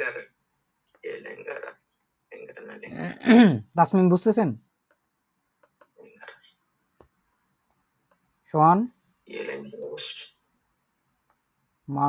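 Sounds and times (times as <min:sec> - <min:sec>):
stylus tapping tablet screen: 0:04.8 - 0:06.0.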